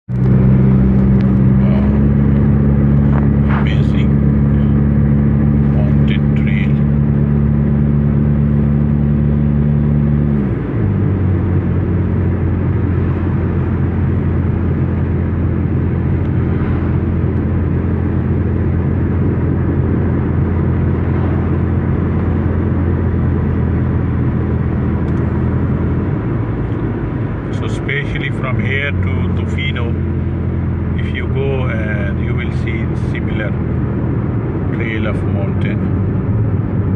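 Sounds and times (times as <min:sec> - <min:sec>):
car engine and road noise: 0:00.0 - 0:36.9.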